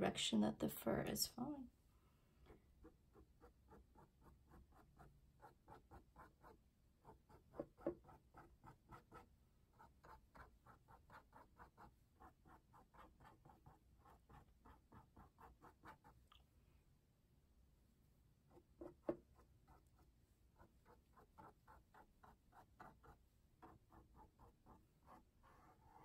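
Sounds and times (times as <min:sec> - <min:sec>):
paintbrush strokes on canvas: 0:18.5 - 0:26.0.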